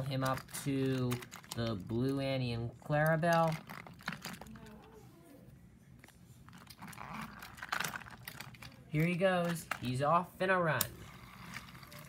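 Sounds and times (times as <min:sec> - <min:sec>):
plastic toy train pieces clicking: 0:00.0 - 0:02.2
plastic scraping and rattling: 0:00.0 - 0:04.8, 0:06.5 - 0:10.0.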